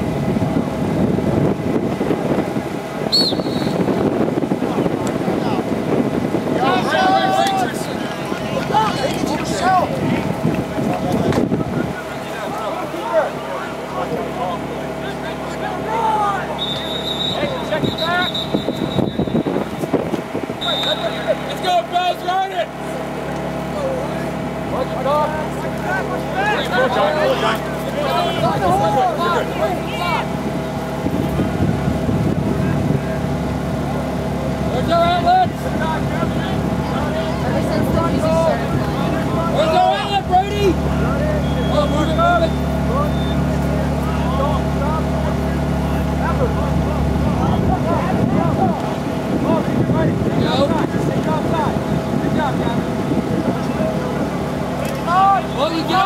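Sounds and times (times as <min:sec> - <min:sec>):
steady mechanical hum: 0:00.0 - 0:56.0
players shouting: 0:06.5 - 0:19.4, 0:20.6 - 0:31.0, 0:34.7 - 0:49.8, 0:54.8 - 0:56.0.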